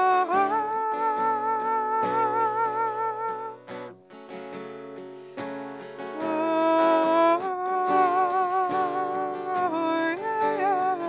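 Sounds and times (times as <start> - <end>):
acoustic guitar picking chords: 0.0 - 11.0.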